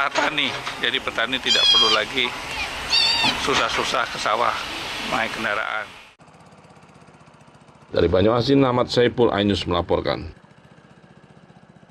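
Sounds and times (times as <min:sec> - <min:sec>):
small engine running fast: 0:04.1 - 0:11.9.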